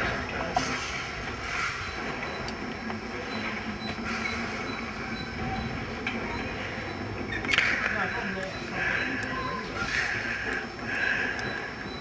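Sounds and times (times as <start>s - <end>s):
steam locomotive rumble: 0.0s - 12.0s.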